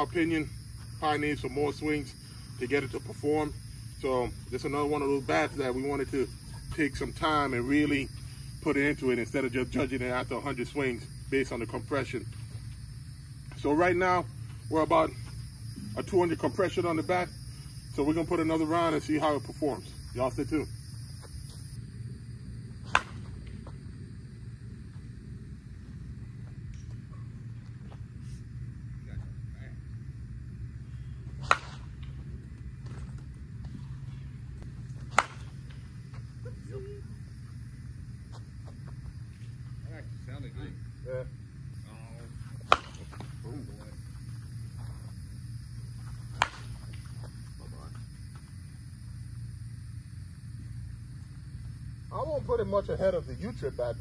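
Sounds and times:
steady low hum: 0:00.0 - 0:54.0
bat cracking softballs: 0:22.8 - 0:23.9, 0:31.2 - 0:36.4, 0:42.4 - 0:45.2, 0:45.8 - 0:48.7.

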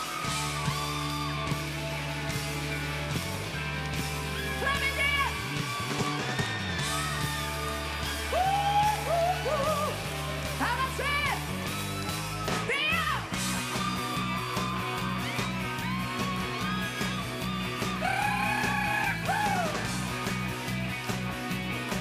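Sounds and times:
live rock band playing: 0:00.0 - 0:22.0
singer yelling and whooping: 0:04.4 - 0:19.9.

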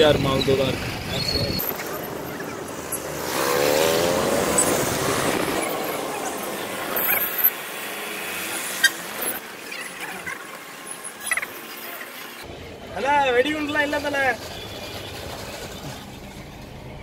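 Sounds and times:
vehicle engine accelerating: 0:00.0 - 0:12.5, 0:14.0 - 0:17.0
traffic noise: 0:00.0 - 0:17.0.

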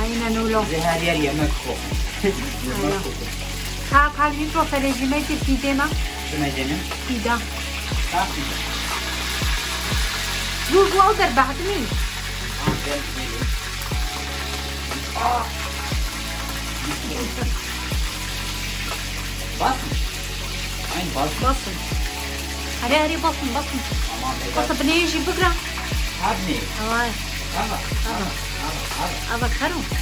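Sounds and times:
music with deep bass beat: 0:00.0 - 0:00.2, 0:01.4 - 0:22.8, 0:23.8 - 0:30.0
food sizzling in oil: 0:00.0 - 0:30.0.

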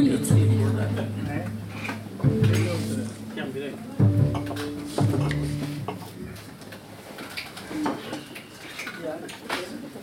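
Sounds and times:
quiet talking: 0:07.4 - 0:10.0.

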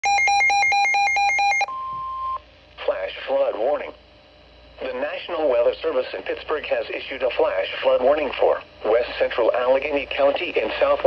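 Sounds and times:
steady single-pitch alarm tone: 0:00.0 - 0:02.4
two-pitch pulsing alarm: 0:00.0 - 0:02.4.

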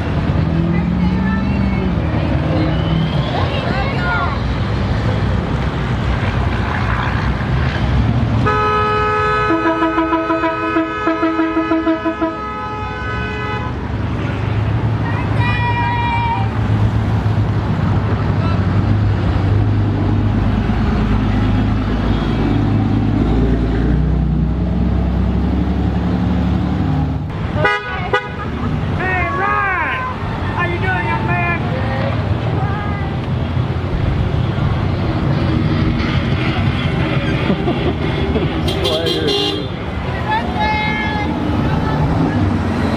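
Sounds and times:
truck engine rumble: 0:00.0 - 0:42.9
car horn honking: 0:08.4 - 0:13.8, 0:27.4 - 0:28.5, 0:38.6 - 0:39.8.

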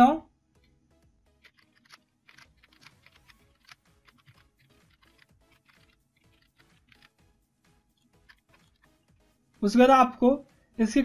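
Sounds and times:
soft background music: 0:00.0 - 0:11.0
computer keyboard typing: 0:01.4 - 0:07.2, 0:08.2 - 0:08.9.

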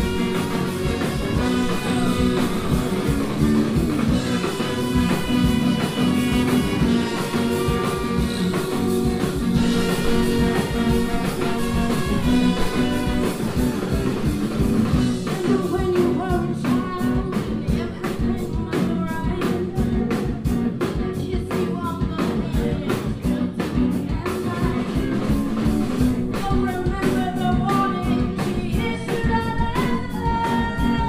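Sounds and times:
horn section playing: 0:00.0 - 0:15.0
drum kit steady beat: 0:00.0 - 0:31.0
electric guitar: 0:00.0 - 0:31.0.

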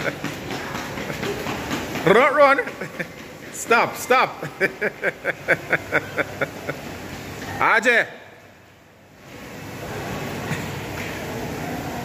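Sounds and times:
background rush of noise: 0:00.0 - 0:12.0.

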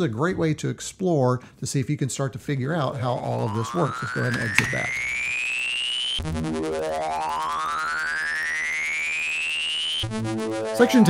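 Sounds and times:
synth tone rising in pitch: 0:06.4 - 0:11.0.

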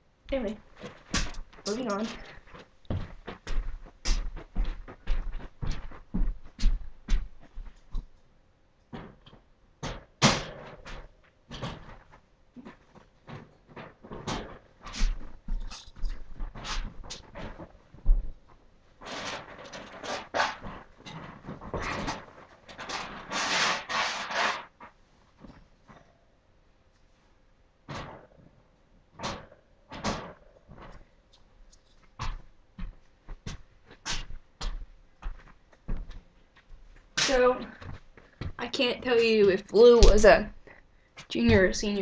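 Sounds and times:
rustling: 0:08.9 - 0:26.1.

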